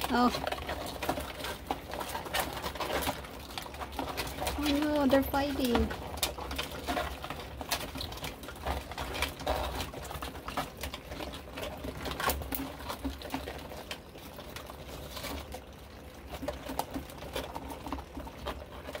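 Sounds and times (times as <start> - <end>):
crab shells knocking and scraping: 0.0 - 19.0.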